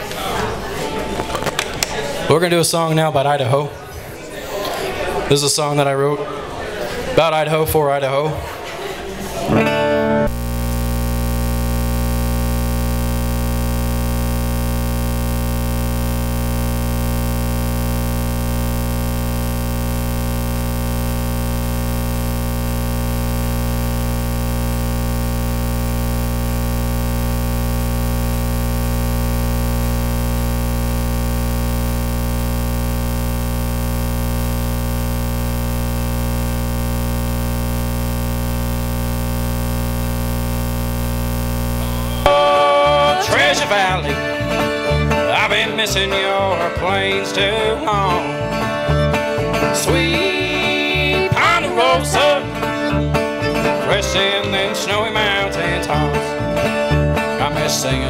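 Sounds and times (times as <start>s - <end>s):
electronic drone with hiss: 10.3s - 42.4s.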